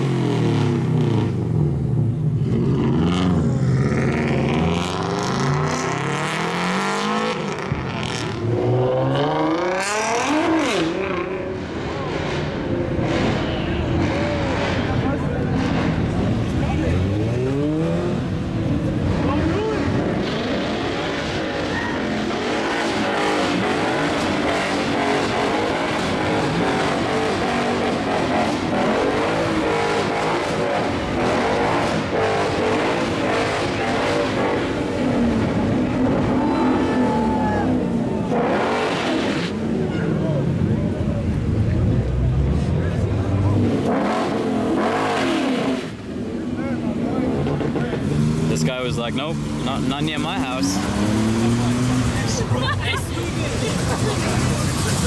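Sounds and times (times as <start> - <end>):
car engine revving: 0.0 - 55.0
crowd voices: 0.0 - 55.0.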